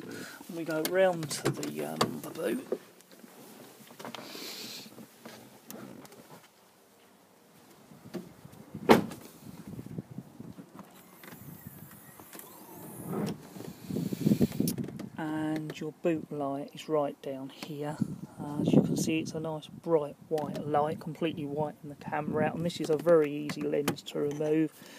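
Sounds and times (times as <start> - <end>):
handling and movement noises: 0.0 - 9.8.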